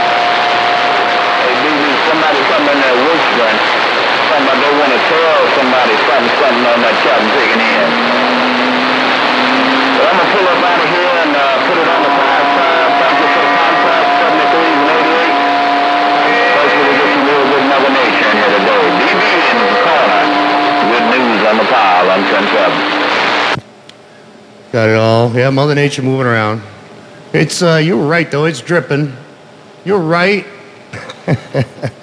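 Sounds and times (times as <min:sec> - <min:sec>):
distant garbled voices: 0:00.0 - 0:23.6
radio static: 0:00.0 - 0:23.6.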